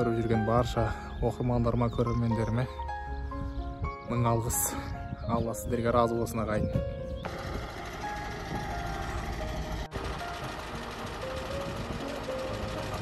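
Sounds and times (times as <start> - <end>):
faint music: 0.0 - 13.0
heavy truck engine running: 7.2 - 13.0.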